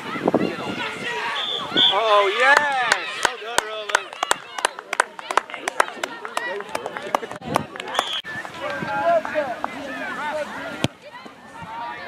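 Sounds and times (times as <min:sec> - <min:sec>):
spectators shouting: 0:00.0 - 0:07.1
crowd clapping: 0:02.4 - 0:09.8.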